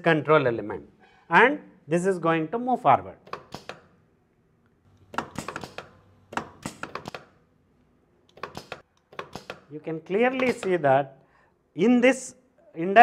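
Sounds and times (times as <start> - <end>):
pneumatic valve clicks and clacks: 3.2 - 4.0, 4.9 - 7.4, 8.3 - 9.7, 10.3 - 10.8.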